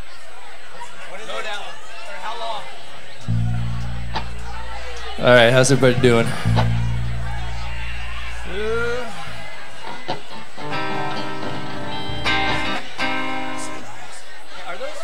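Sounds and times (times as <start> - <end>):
held low bass note: 3.3 - 9.3
guitar chords ringing: 3.3 - 9.4, 10.6 - 13.8.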